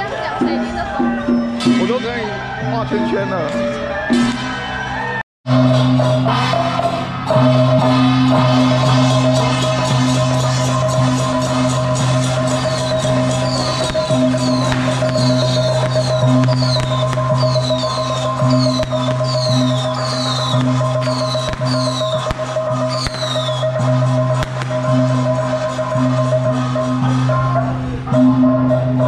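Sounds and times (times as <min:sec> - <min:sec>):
music over horn loudspeakers: 0:00.0 - 0:29.0
high falling chirp: 0:12.5 - 0:23.8.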